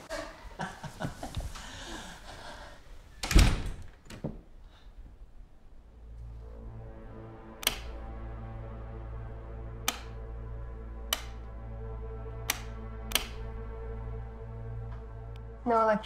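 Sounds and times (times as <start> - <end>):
low film score drone: 5.2 - 16.0
light switch clicking: 7.6 - 8.0, 9.8 - 10.2, 11.1 - 11.5, 12.4 - 13.4.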